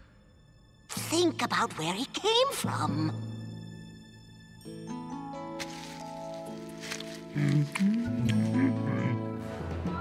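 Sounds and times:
background music: 0:00.0 - 0:10.0
cartoon creature grunts and moans: 0:07.3 - 0:09.3.

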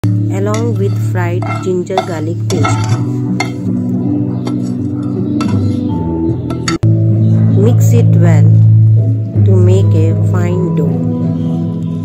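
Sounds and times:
background music of held tones: 0:00.0 - 0:12.0
utensil clinking against bowl: 0:00.4 - 0:03.7.

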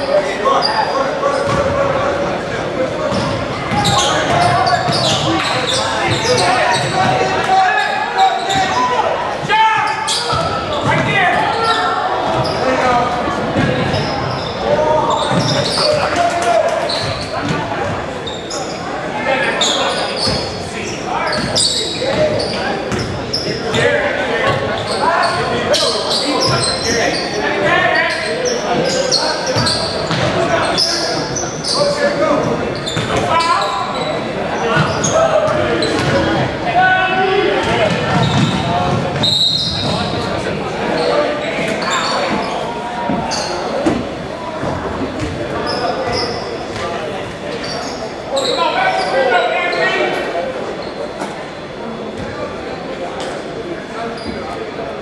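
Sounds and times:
people shouting and talking: 0:00.0 - 0:55.0.

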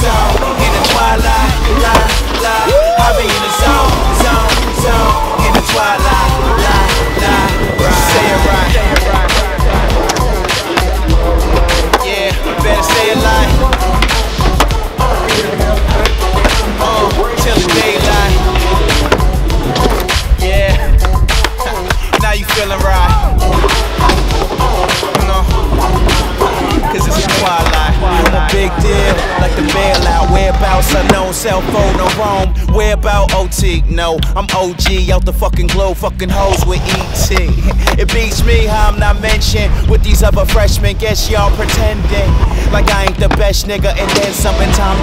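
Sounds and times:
hip-hop music: 0:00.0 - 0:45.0
skateboard wheels rolling on concrete: 0:00.0 - 0:45.0
sung vocal line: 0:00.0 - 0:45.0
skateboard clacks: 0:08.0 - 0:32.5, 0:36.4 - 0:45.0.

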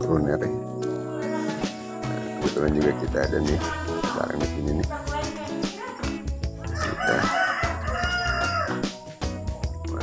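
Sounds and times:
background music with low beat: 0:00.0 - 0:10.0.

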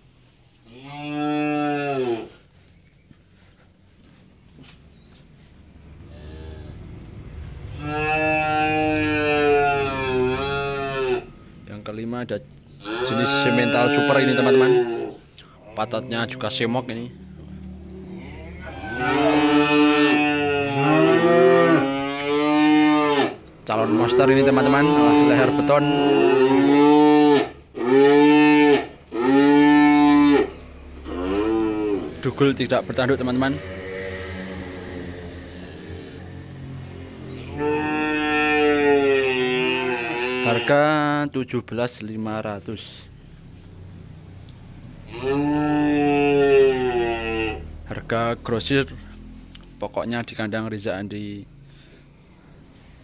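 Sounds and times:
calf mooing: 0:00.7 - 0:02.4, 0:06.0 - 0:06.9, 0:07.7 - 0:11.4, 0:12.8 - 0:15.2, 0:16.4 - 0:41.0, 0:45.1 - 0:47.8.

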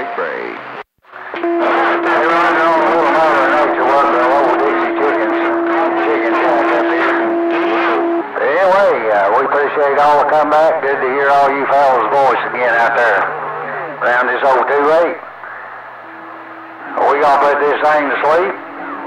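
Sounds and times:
garbled radio voices: 0:00.0 - 0:19.0
steady radio whistle tone: 0:01.2 - 0:19.0.

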